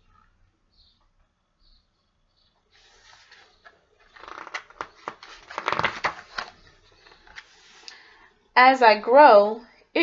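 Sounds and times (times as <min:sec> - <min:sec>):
paper page rustling: 0:02.7 - 0:07.9.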